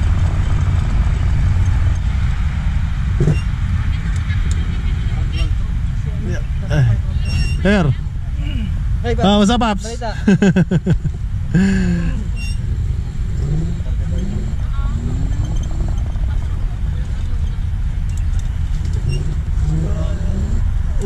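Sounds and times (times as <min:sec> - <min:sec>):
faint voices: 0:03.2 - 0:10.0, 0:11.5 - 0:21.0
wind rumble on microphone: 0:12.3 - 0:21.0.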